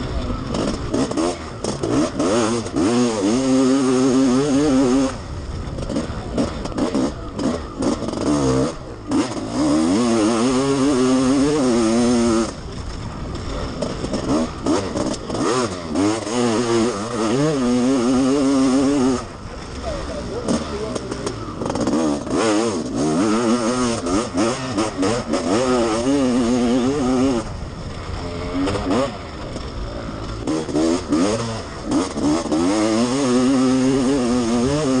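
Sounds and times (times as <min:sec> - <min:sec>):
motocross engine revving: 0:00.0 - 0:35.0.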